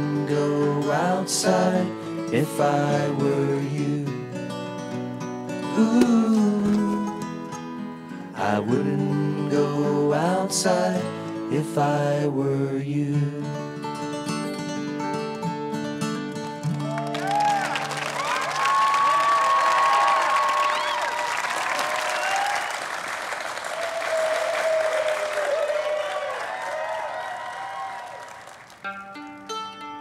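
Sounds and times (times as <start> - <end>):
acoustic guitar chord ringing: 0.0 - 10.0
plucked guitar notes: 4.1 - 9.6, 28.8 - 30.0
audience clapping and cheering: 16.7 - 29.5.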